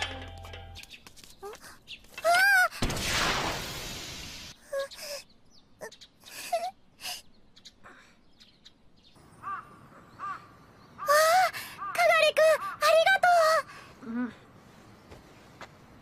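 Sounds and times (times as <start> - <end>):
hissing noise: 2.8 - 4.6.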